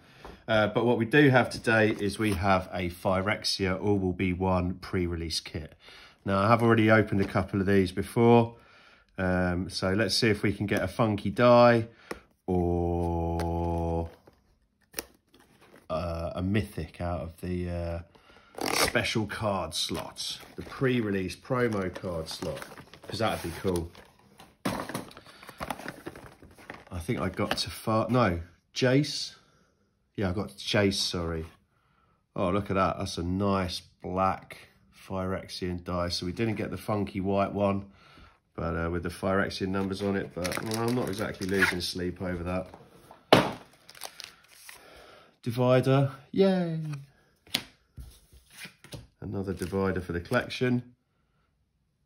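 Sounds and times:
cards sliding and rustling: 0:13.4 - 0:15.9, 0:18.8 - 0:27.6, 0:42.6 - 0:44.8, 0:46.8 - 0:50.4.

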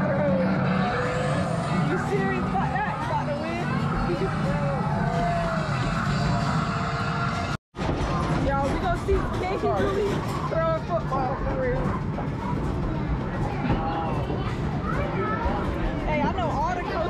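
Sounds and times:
game machines noise: 0:00.0 - 0:17.0
many voices chattering: 0:00.0 - 0:17.0.

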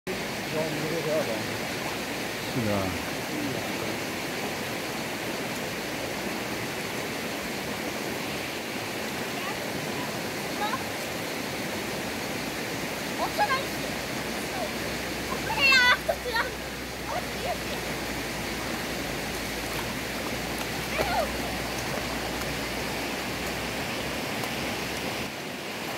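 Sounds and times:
river rushing: 0:00.1 - 0:25.9.

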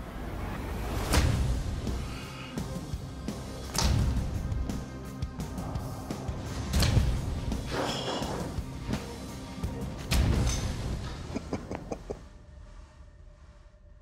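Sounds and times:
background music: 0:00.0 - 0:14.0.

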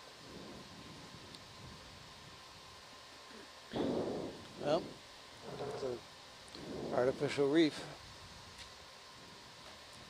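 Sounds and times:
people talking: 0:04.6 - 0:04.9, 0:06.9 - 0:07.9.

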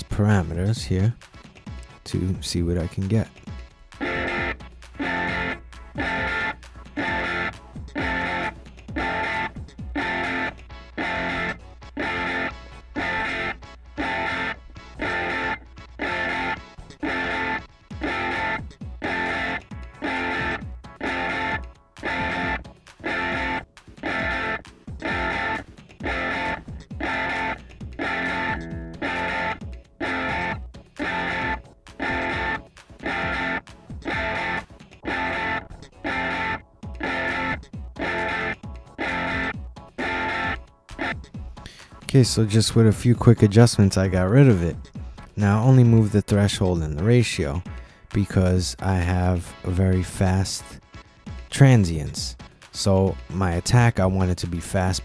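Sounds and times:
electric guitar phrases through amp: 0:00.0 - 0:01.2, 0:02.0 - 0:03.4, 0:42.0 - 0:50.8, 0:51.5 - 0:55.0
amp hum: 0:03.9 - 0:41.2.

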